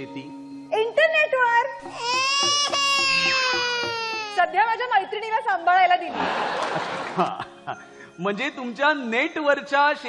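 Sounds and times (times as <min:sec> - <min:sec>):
person wailing cry: 0:02.0 - 0:04.4.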